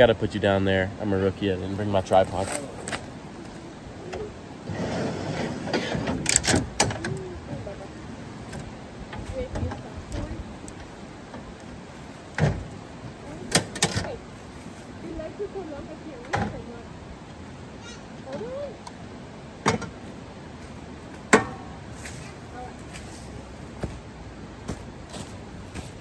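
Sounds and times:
drawer sliding on runners: 4.6 - 7.0.

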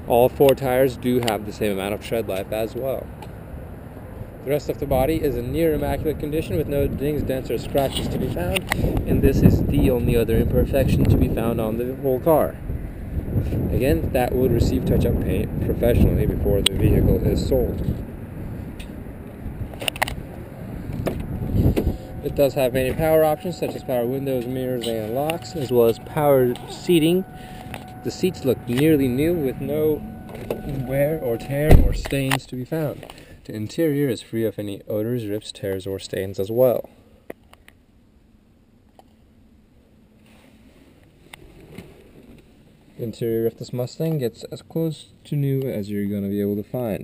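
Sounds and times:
low outdoor noise: 14.1 - 46.6.

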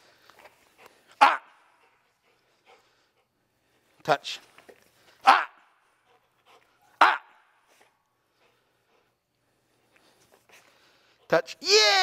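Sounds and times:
dog barking: 1.2 - 1.6, 5.2 - 5.6, 7.0 - 7.4.

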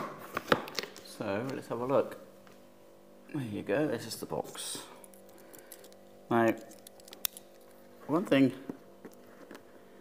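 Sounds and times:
man speaking: 8.1 - 8.7.

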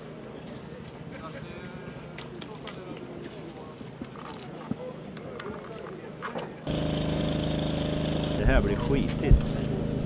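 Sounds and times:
motorcycle engine running: 6.7 - 10.0.

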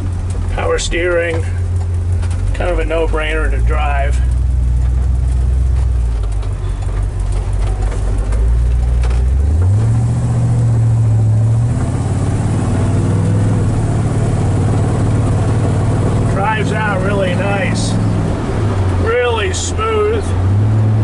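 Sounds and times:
pickup truck engine accelerating: 0.0 - 21.0.

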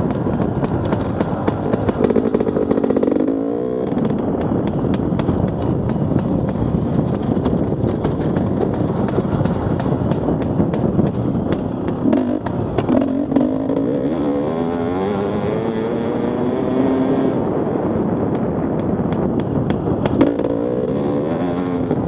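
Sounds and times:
knocks and rattles from bumps: 0.0 - 13.9
dirt bike engine running hard: 0.0 - 22.0.

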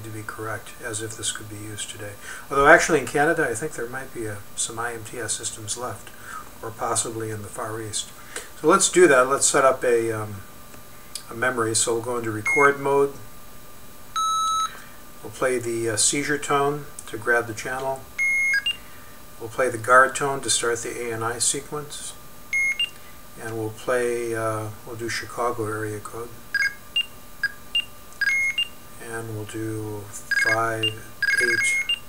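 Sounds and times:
electronic beep from small speaker: 14.2 - 14.8, 18.2 - 18.8, 22.6 - 23.0, 26.6 - 28.7, 30.3 - 32.0.

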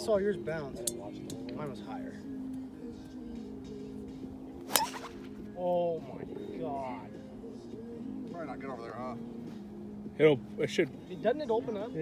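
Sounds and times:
background music: 0.0 - 12.0
golf club striking ball: 4.6 - 5.5.

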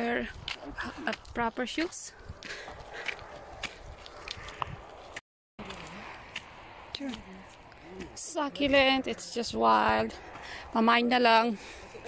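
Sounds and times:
footsteps crunching on stony path: 0.0 - 8.9.

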